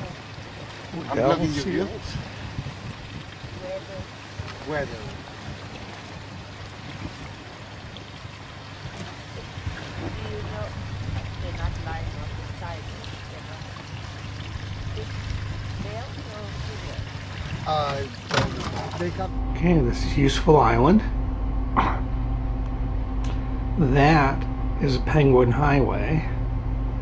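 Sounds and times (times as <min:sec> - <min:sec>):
water washing against rocks: 0:00.0 - 0:19.2
outboard motor idling: 0:00.0 - 0:27.0
wind on microphone: 0:01.4 - 0:17.9.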